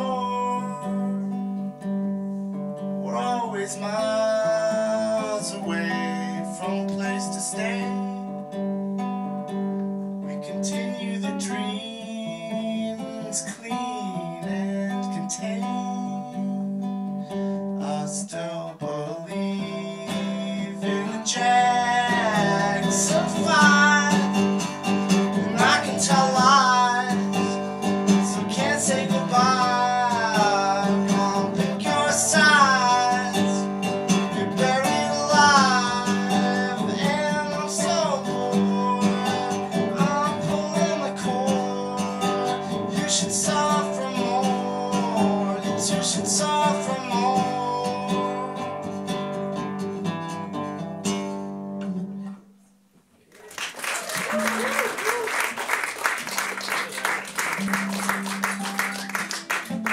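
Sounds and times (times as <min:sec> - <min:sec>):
man singing: 0:00.0 - 0:01.5, 0:03.0 - 0:08.5, 0:10.3 - 0:16.8, 0:17.8 - 0:49.0
nylon-string guitar strumming: 0:00.0 - 0:17.8, 0:18.4 - 0:52.4, 0:57.6 - 0:59.9
applause: 0:53.3 - 0:59.9.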